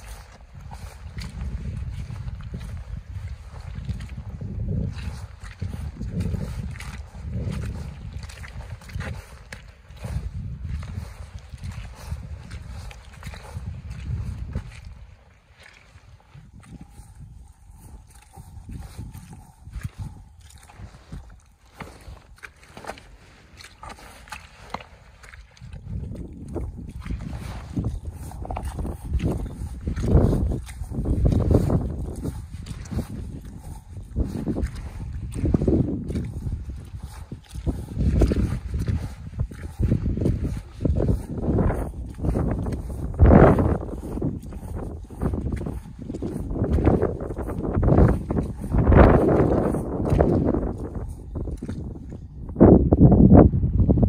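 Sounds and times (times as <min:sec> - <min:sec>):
boots squelching through wet mud: 0:00.0 - 0:53.1.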